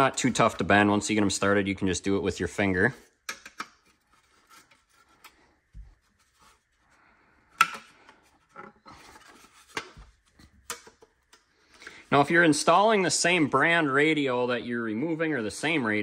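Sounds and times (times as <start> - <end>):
rubbing and scraping: 3.8 - 7.0, 8.2 - 10.6.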